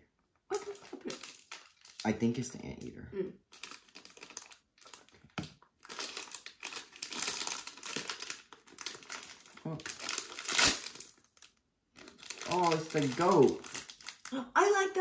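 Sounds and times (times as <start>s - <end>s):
foil wrapper crinkling and tearing: 0.5s - 2.1s, 3.5s - 14.4s.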